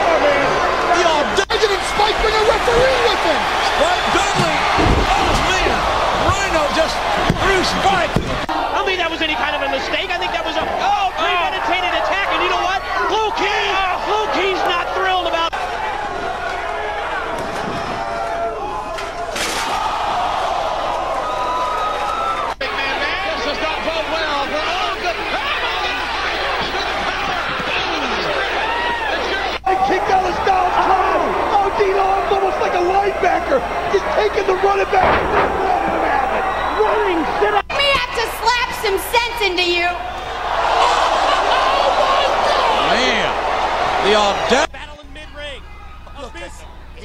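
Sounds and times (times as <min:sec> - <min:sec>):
commentators talking: 0:00.0 - 0:15.6, 0:22.6 - 0:40.1
arena crowd noise: 0:00.0 - 0:47.0.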